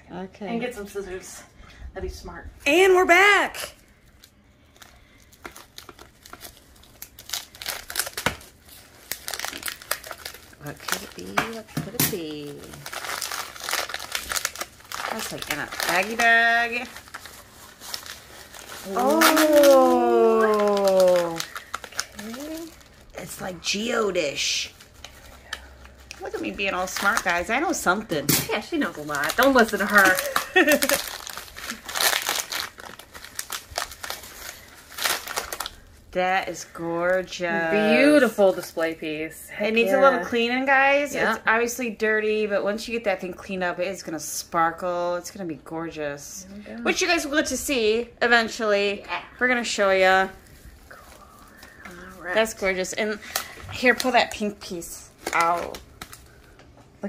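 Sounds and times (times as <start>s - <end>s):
scissors cutting plastic bag: 5.4s - 22.8s, 25.0s - 35.7s.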